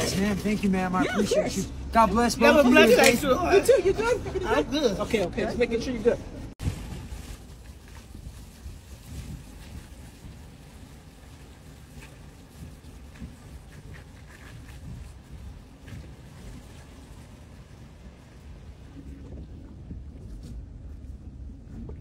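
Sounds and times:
vehicle road noise: 0.0s - 22.0s
wind: 0.0s - 22.0s.

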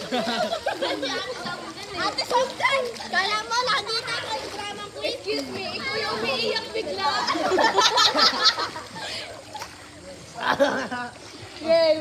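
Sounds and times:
children laughing and calling out: 0.0s - 12.0s.

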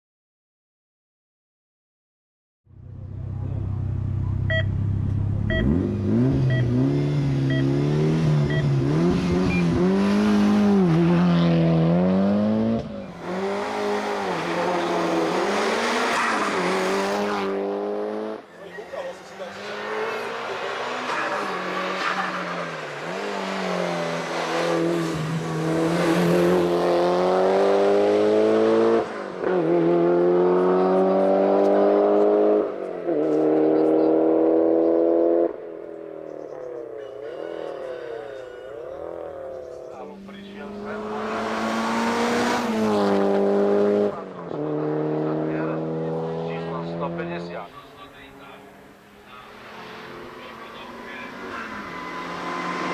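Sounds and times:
car engine accelerating hard: 2.8s - 52.9s.

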